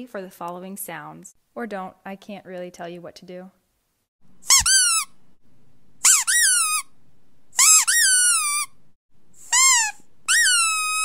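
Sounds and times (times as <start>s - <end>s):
high-pitched squeaks: 4.4s - 5.2s, 6.0s - 6.9s, 7.6s - 8.8s, 9.4s - 11.0s.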